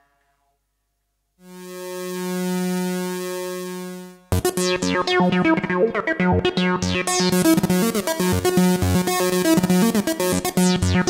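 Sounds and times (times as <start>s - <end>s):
synthesizer sustained note: 1.5s - 11.0s.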